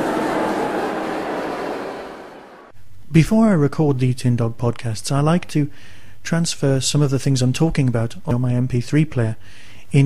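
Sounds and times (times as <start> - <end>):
audience applause: 0.0 - 2.7.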